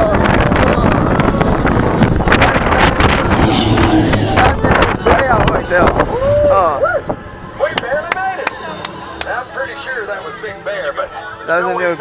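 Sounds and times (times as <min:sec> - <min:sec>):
wind buffeting microphone: 0:00.0 - 0:07.6
roller coaster train rushing: 0:00.2 - 0:06.0.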